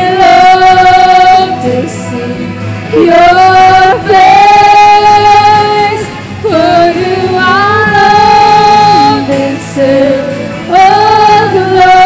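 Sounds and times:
live instrumental accompaniment: 0.0s - 12.0s
women singing in unison: 0.0s - 12.0s.

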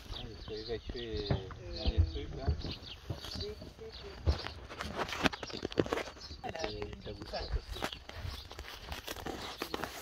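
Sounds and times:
footsteps through grass: 2.8s - 10.0s.

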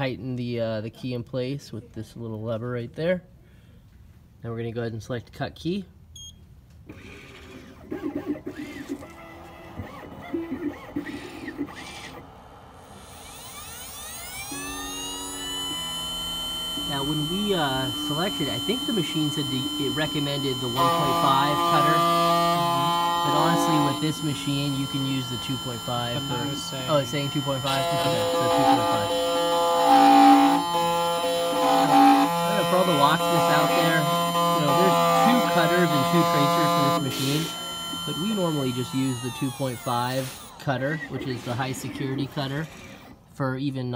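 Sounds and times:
key-cutting machine motor whine: 8.2s - 43.2s.

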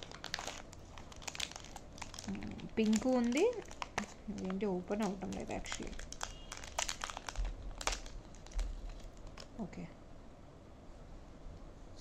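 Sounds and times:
packaging crinkling: 0.0s - 9.6s.

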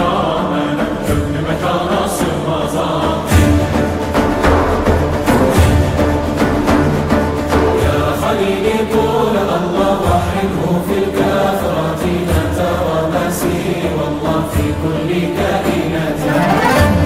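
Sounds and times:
choir chanting with drums and strings: 0.0s - 17.0s.

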